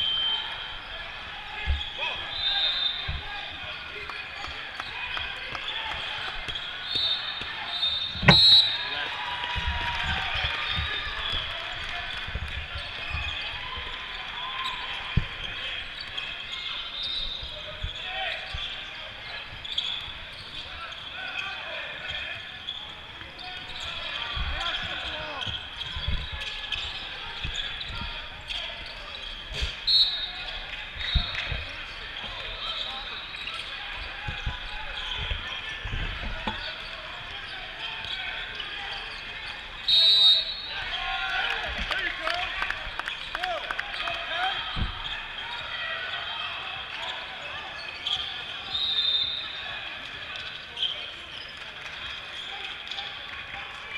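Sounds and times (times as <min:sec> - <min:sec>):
people talking in a large hall: 0:00.0 - 0:53.9
basketball dribbling thumps: 0:08.2 - 0:08.5, 0:34.2 - 0:36.7.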